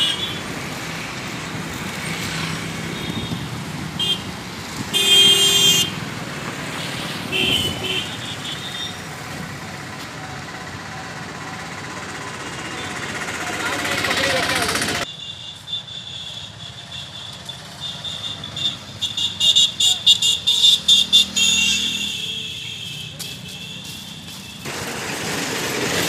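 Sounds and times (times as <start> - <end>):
street traffic passing: 0.0 - 26.0
vehicle horn: 2.9 - 4.3, 4.9 - 6.0, 7.2 - 9.1, 15.1 - 24.7.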